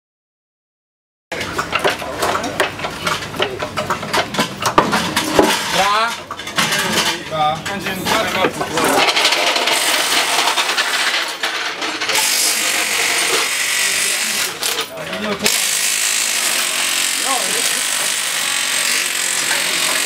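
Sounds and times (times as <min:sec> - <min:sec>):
tools clinking and rattling: 0:01.4 - 0:13.5, 0:14.4 - 0:15.6.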